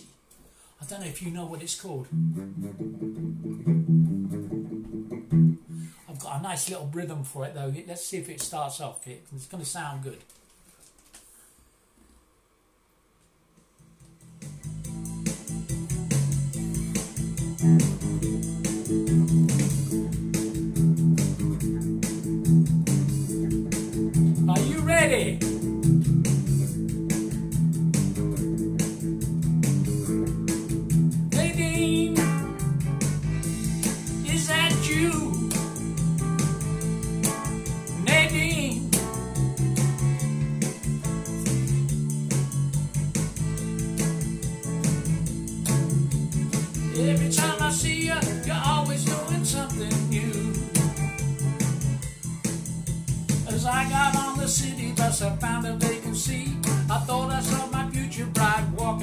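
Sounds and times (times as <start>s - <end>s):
electric guitar rock and roll rhythm: 2.1s - 6.0s, 13.8s - 59.0s
backing rhythm with steady beat: 13.6s - 59.0s.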